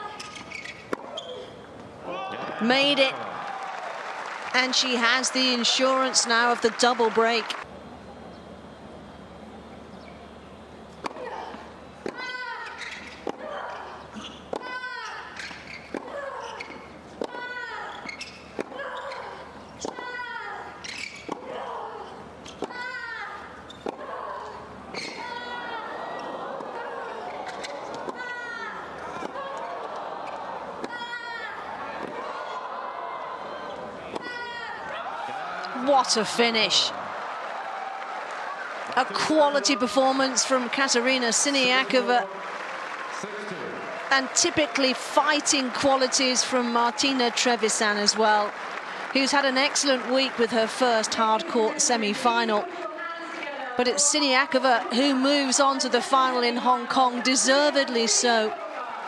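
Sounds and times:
crowd applauding: 0:02.6 - 0:07.7, 0:34.8 - 0:52.1
racket striking tennis ball: 0:11.0 - 0:14.9, 0:18.5 - 0:20.2, 0:34.1 - 0:34.5.

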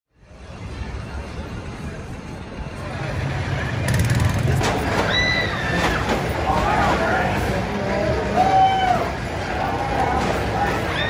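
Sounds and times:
crowd murmur: 0:00.2 - 0:11.0.

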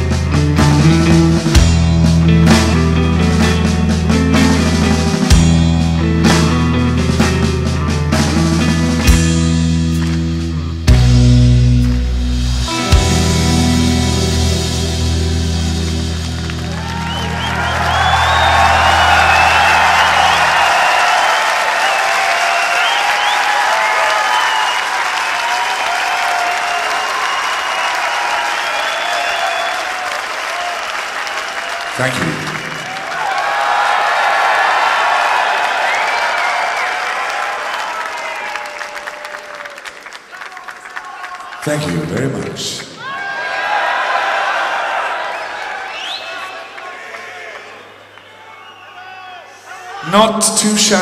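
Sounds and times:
crowd cheering and applauding: 0:02.4 - 0:51.0.

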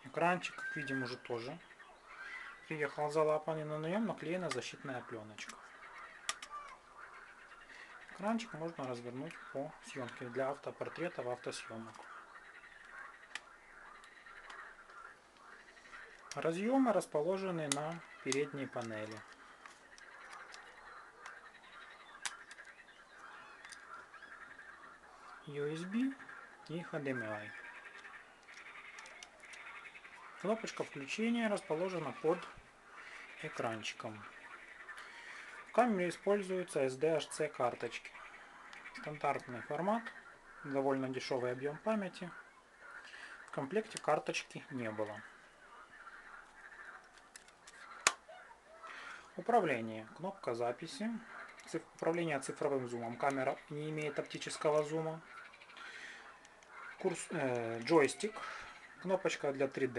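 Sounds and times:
fingers handling plastic camcorder: 0:06.2 - 0:06.8, 0:17.6 - 0:21.4, 0:22.1 - 0:24.3, 0:27.8 - 0:29.8, 0:46.4 - 0:48.2.

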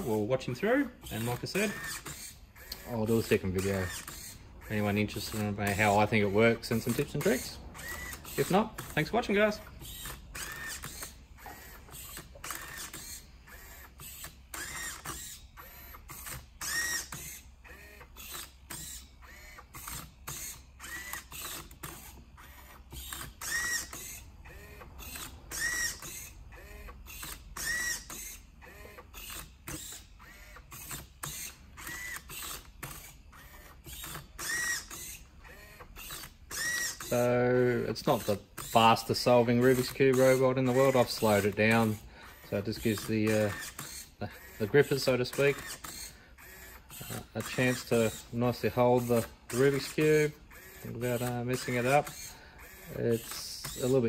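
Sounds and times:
servo whirs and clicks: 0:00.0 - 0:54.0.

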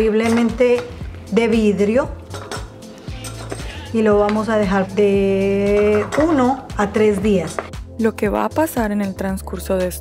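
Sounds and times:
soft background music: 0:00.0 - 0:10.0
wooden spoon knocking on glass jar: 0:05.6 - 0:07.7.

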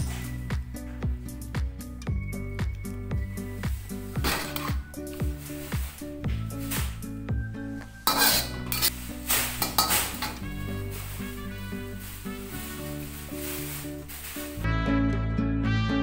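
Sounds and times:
background music: 0:00.0 - 0:16.0
food sizzling: 0:03.4 - 0:07.2, 0:07.8 - 0:14.6
metal spatula scraping a wok: 0:03.9 - 0:05.6, 0:08.0 - 0:14.6.

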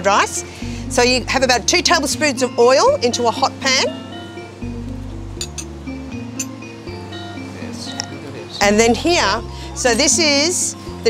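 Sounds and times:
background music: 0:00.0 - 0:11.0
spoon clinking against bowl: 0:05.4 - 0:05.7, 0:06.3 - 0:06.6.

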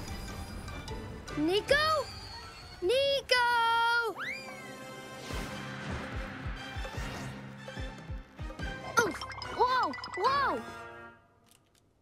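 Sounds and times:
cartoon background music: 0:00.0 - 0:11.4.

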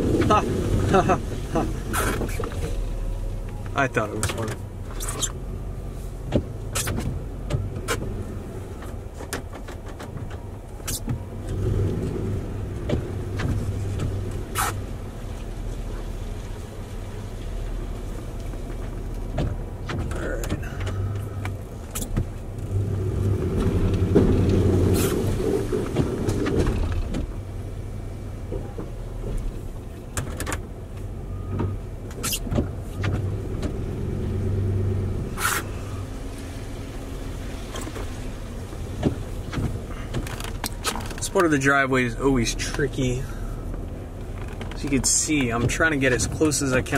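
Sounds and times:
plow blade pushing snow: 0:00.0 - 0:46.9
sharp clicks and knocks: 0:08.8 - 0:12.0, 0:18.4 - 0:22.8, 0:30.1 - 0:33.8, 0:39.0 - 0:41.6, 0:43.7 - 0:46.9.

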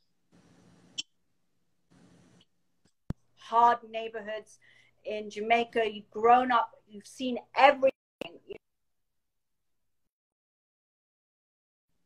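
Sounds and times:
faint hiss: 0:00.3 - 0:01.0, 0:01.9 - 0:02.5.

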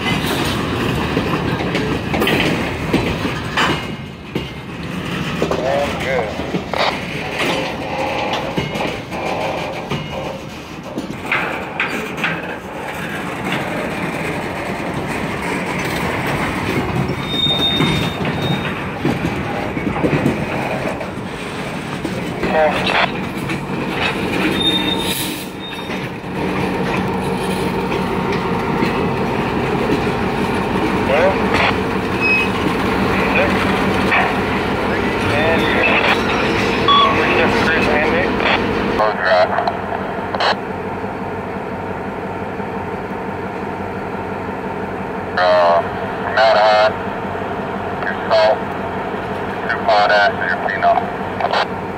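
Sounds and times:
diesel locomotive rolling by: 0:00.0 - 0:51.9.

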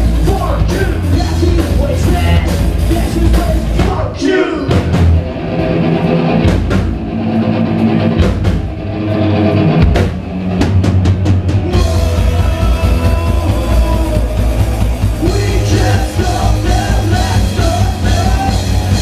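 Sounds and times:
ska-punk band playing live: 0:00.0 - 0:19.0.

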